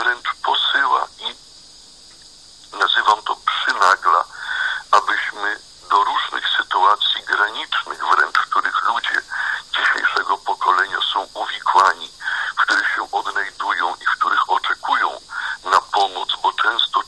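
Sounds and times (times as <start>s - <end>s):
radio broadcast speech: 0.0s - 1.4s, 2.7s - 17.0s.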